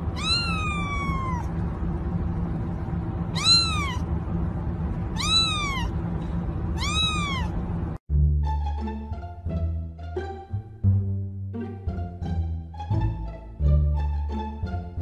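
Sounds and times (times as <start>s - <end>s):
steady low hum: 0.0s - 15.0s
kitten meowing: 0.1s - 1.5s, 3.3s - 4.0s, 5.1s - 6.0s, 6.8s - 7.6s.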